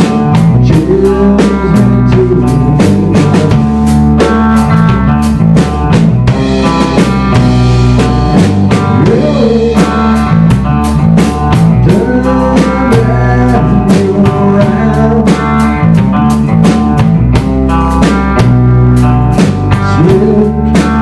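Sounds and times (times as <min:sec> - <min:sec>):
bass guitar: 0:00.0 - 0:21.0
drum kit beat: 0:00.0 - 0:21.0
electric guitar: 0:00.0 - 0:21.0
rock band playing: 0:00.0 - 0:21.0.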